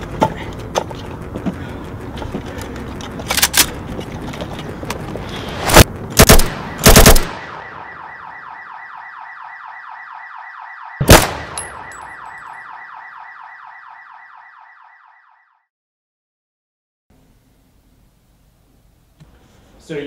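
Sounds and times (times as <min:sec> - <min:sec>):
rifle gunshots: 0:05.6 - 0:07.6, 0:11.0 - 0:11.8
car alarm pulsing: 0:06.6 - 0:15.7.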